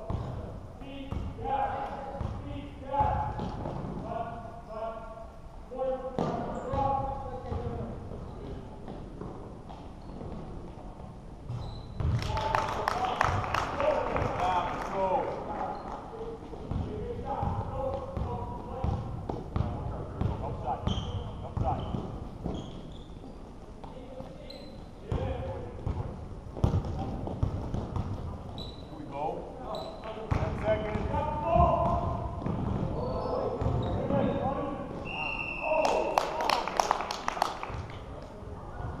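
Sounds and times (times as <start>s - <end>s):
sneakers squeaking: 6.2s - 12.2s, 15.6s - 35.8s
basketball bouncing on court: 11.5s - 12.2s, 18.2s - 22.7s, 25.1s - 28.4s, 30.3s - 33.0s, 33.6s - 34.0s.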